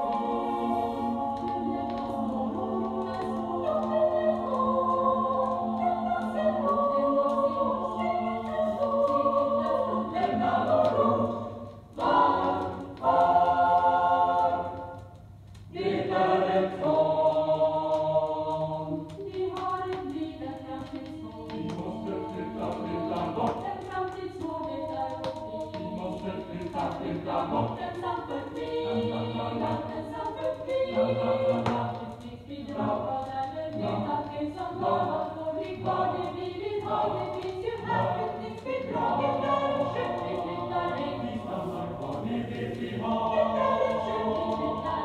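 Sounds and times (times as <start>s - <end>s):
choir singing held chords: 0.0s - 45.0s.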